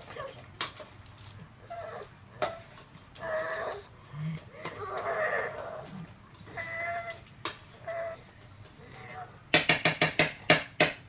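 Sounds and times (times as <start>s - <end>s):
dog whining: 1.5s - 9.5s.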